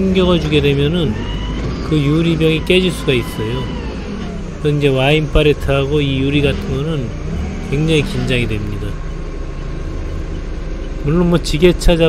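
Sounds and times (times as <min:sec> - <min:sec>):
forklift engine humming: 0:00.0 - 0:12.0.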